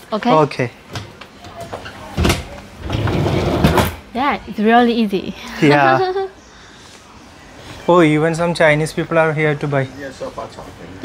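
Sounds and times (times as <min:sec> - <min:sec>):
sofa bed sliding rumble: 0:02.9 - 0:03.9.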